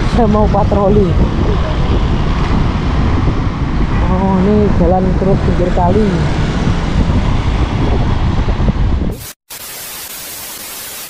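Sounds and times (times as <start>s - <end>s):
road rumble: 0.0s - 9.2s
wind on microphone: 0.0s - 9.3s
static hiss transition effect: 9.1s - 11.0s.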